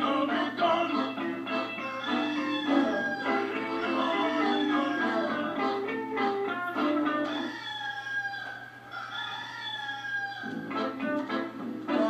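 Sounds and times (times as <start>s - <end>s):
guitar music: 0.0s - 7.5s, 10.5s - 12.0s.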